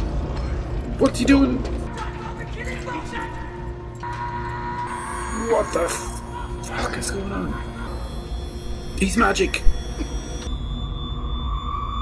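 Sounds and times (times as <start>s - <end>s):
high ringing tone: 4.0s - 12.0s.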